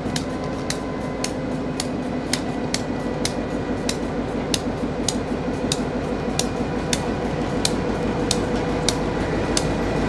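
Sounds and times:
diesel locomotive engine rumble: 0.0s - 10.0s
metallic wheel clicks on track: 0.0s - 10.0s.

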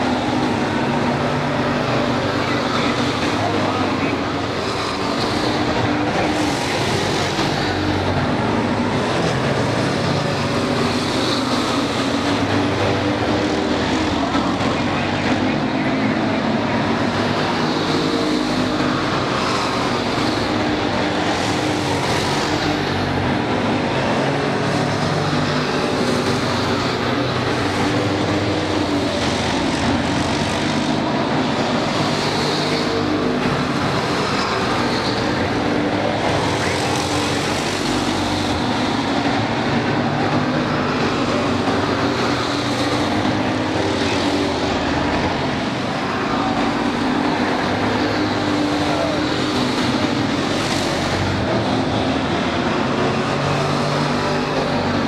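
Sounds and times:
race car engines racing: 0.0s - 55.0s.

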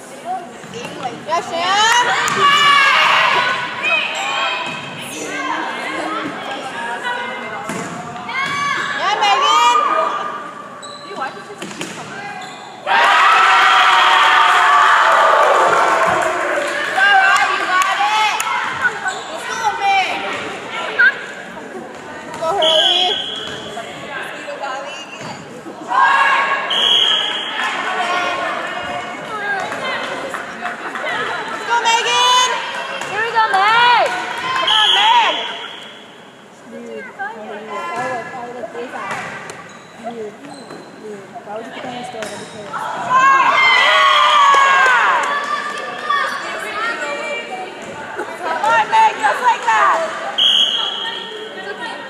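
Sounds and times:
girls shouting and cheering: 1.4s - 6.1s, 8.3s - 10.4s, 31.0s - 35.6s, 42.8s - 47.7s
crowd cheering and shouting: 1.6s - 7.4s, 12.8s - 20.3s, 42.8s - 47.8s
volleyball hits: 7.6s - 9.0s.

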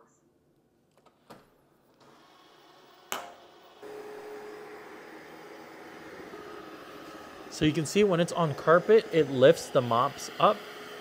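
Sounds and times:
robot vacuum whirring: 2.0s - 11.0s.

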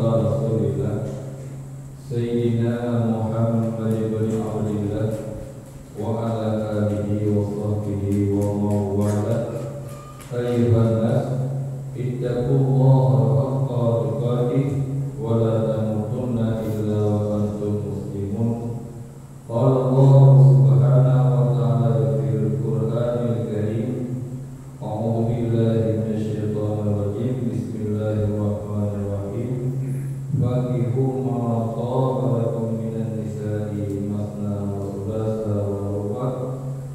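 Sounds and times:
man chanting over a microphone: 0.0s - 18.9s, 19.5s - 36.8s.

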